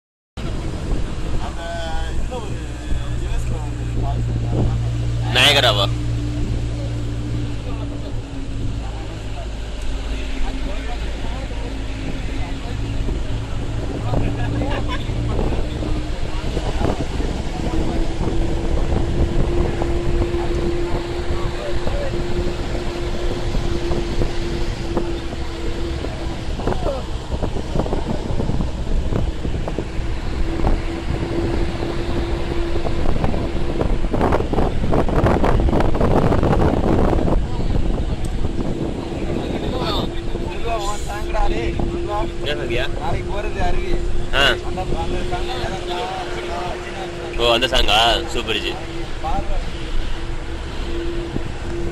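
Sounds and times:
vehicle engine and road noise: 0.4s - 51.9s
wind buffeting microphone: 0.4s - 51.9s
steady hum: 36.5s - 51.9s.

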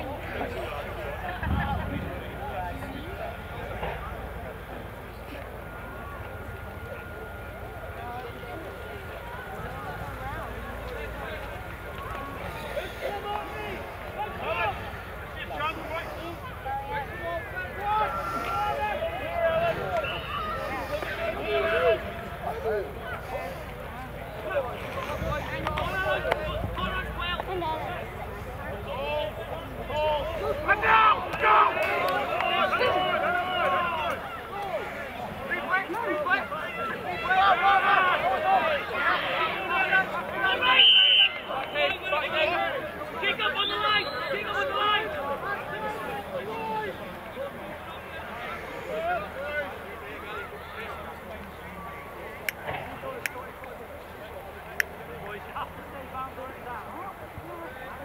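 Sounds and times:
players and spectators shouting: 0.0s - 58.0s.

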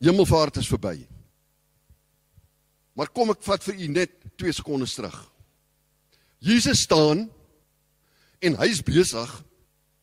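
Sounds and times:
low electrical hum: 0.0s - 10.0s
man speaking: 3.0s - 5.3s, 6.4s - 7.4s, 8.4s - 9.5s.

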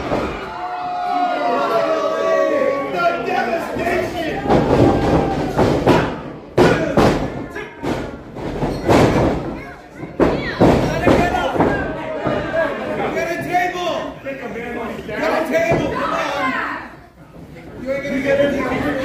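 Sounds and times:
crowd voices in a hall: 0.0s - 19.0s
thuds on wrestling ring canvas: 4.4s - 9.6s.

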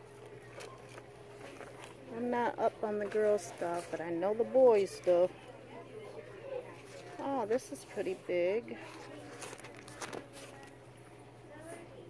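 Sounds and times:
faint voices: 0.0s - 12.0s
steady low hum: 0.0s - 12.0s
fabric pouch handling noise: 8.8s - 10.8s.

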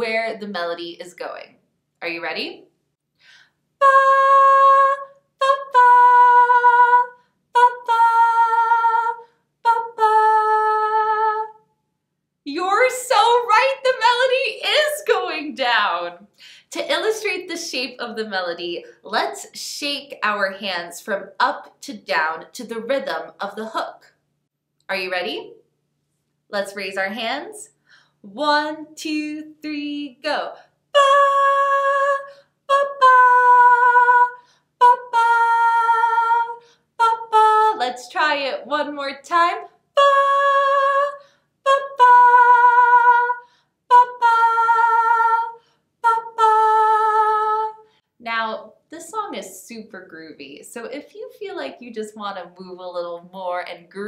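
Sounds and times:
woman singing unaccompanied: 3.8s - 11.6s, 28.3s - 47.8s.

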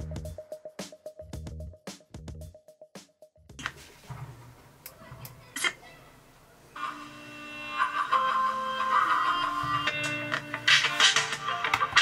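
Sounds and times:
music from car stereo speaker: 7.7s - 12.0s.

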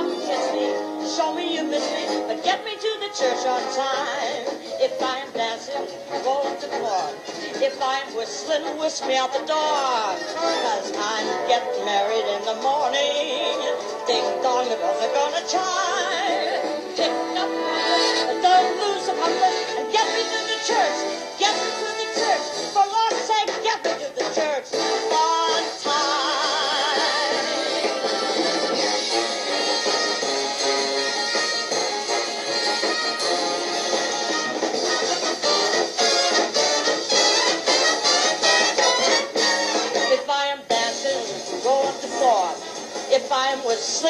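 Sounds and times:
person singing: 0.0s - 30.2s, 40.0s - 44.0s
band playing show tune: 0.0s - 44.0s.

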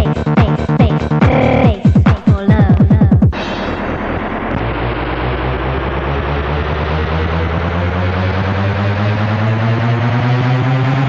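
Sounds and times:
synthesizer drone rising in pitch: 3.3s - 11.0s.

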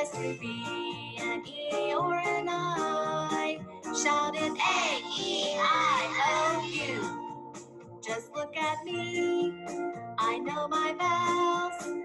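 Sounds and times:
child singing: 0.0s - 7.1s, 10.2s - 11.9s
upbeat backing music: 0.0s - 12.0s.

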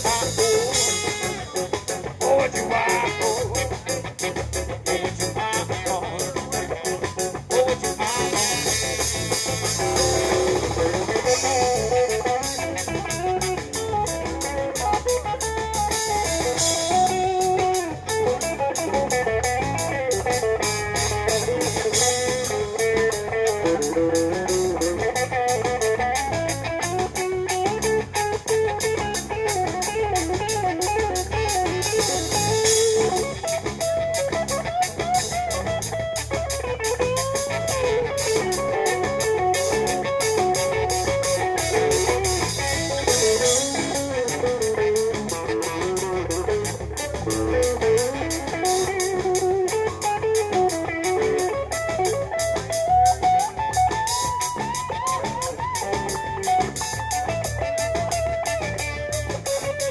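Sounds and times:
drum kit cymbal beat: 0.0s - 59.9s
electric guitar lead: 0.0s - 59.9s.

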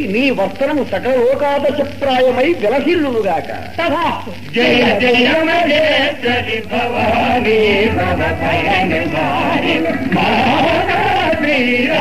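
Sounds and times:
low drone: 6.4s - 12.0s.

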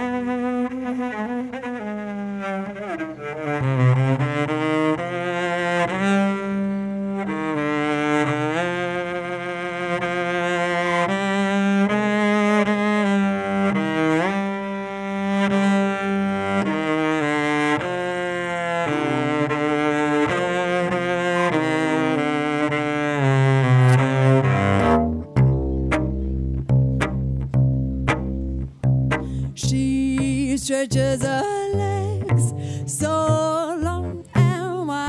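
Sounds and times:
bowed cello melody: 0.0s - 35.0s.

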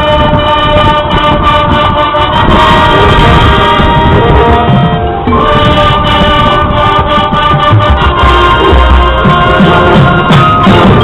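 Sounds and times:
brass band playing held chords: 0.0s - 11.0s
drums and percussion: 0.0s - 11.0s.

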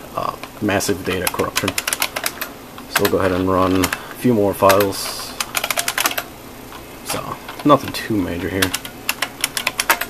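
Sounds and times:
keyboard keys clicking: 1.1s - 4.0s, 4.6s - 6.3s, 7.1s - 10.0s.

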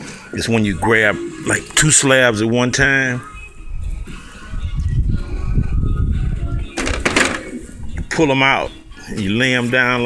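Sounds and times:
faint background music: 0.0s - 10.0s
microphone handling rumble: 3.7s - 8.1s.

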